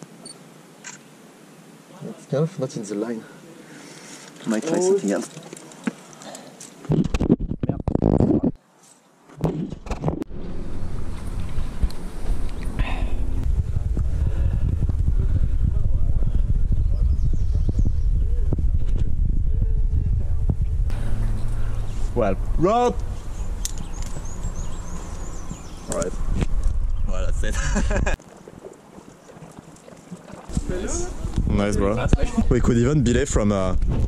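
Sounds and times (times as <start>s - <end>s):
wind rumbling on microphone: 6.8s - 8.6s, 9.4s - 34.0s.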